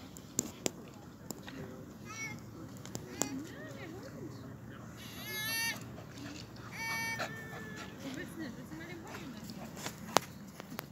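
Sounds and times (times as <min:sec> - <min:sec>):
dog whining: 0:05.0 - 0:05.8, 0:06.7 - 0:08.1.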